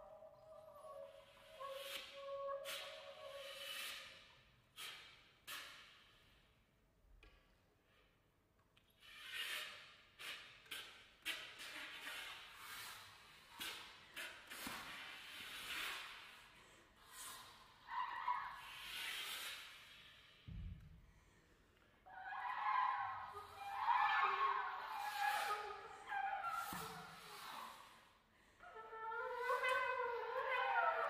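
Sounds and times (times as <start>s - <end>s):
low thump: 20.5s - 21.0s.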